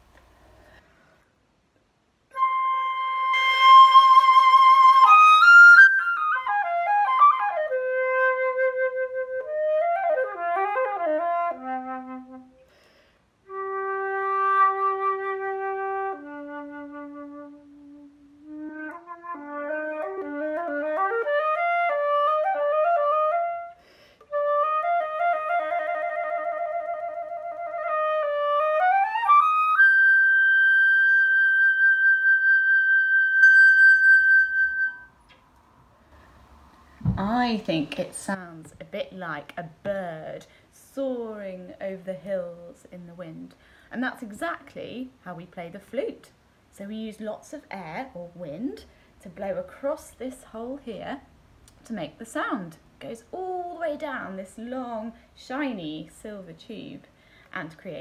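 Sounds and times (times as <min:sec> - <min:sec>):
solo flute melody: 0:02.3 - 0:12.7, 0:13.5 - 0:35.4.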